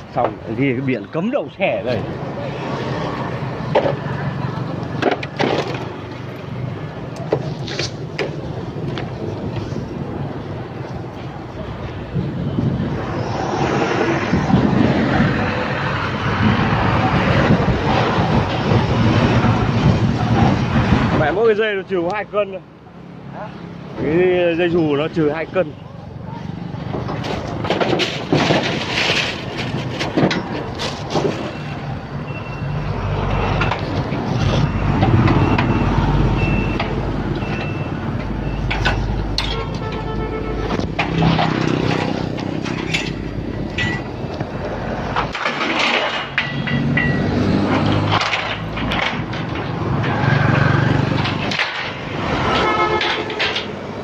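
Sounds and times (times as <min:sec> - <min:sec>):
road noise: 0:00.0 - 0:54.0.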